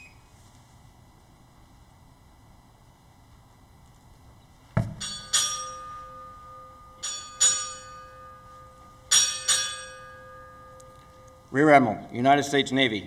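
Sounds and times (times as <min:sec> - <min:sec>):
thump: 0:04.8 - 0:05.1
ship's bell ringing: 0:04.9 - 0:13.0.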